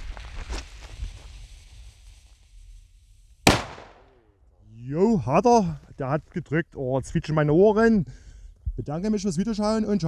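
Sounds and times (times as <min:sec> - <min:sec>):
burning fuse hiss: 0:00.0 - 0:03.4.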